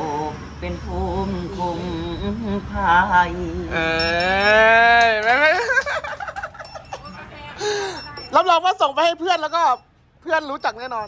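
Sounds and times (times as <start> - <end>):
man singing unaccompanied: 0.0 - 5.5.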